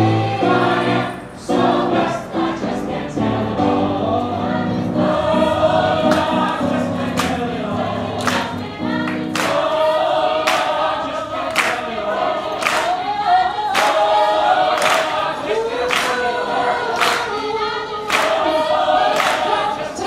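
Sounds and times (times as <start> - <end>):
gospel choir singing: 0.0 - 20.0.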